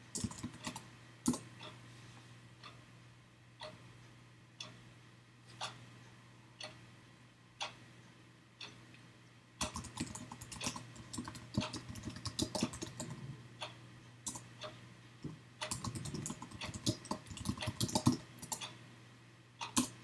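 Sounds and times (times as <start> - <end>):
faint low hum: 0.0 - 20.0
keyboard typing: 0.1 - 1.4, 9.6 - 13.3, 15.6 - 18.7, 19.7 - 20.0.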